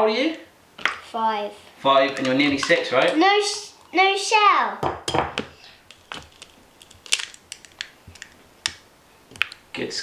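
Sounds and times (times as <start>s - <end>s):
eggshell cracking: 5.0s - 9.8s.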